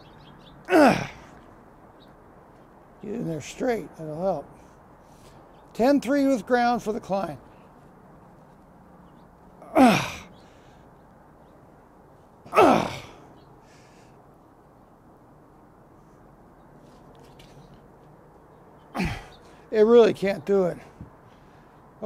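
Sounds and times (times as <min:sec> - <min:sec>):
man straining exhalations: 0:00.7 - 0:01.4, 0:09.6 - 0:10.7, 0:12.5 - 0:14.0, 0:18.9 - 0:19.6.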